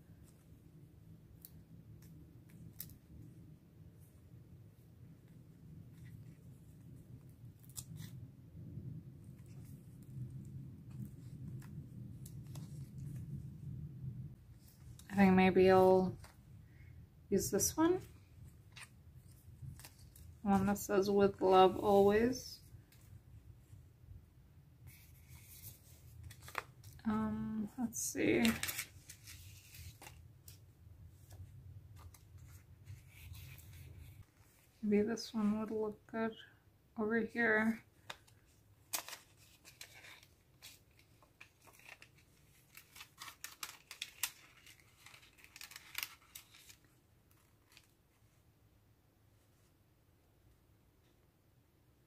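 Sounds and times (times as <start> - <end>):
sticker sheet rustling and crinkling: 9.2 - 13.5, 17.7 - 23.1, 24.9 - 27.1, 27.9 - 35.5, 37.6 - 48.4
plastic sticker sheet crackling: 38.0 - 47.9.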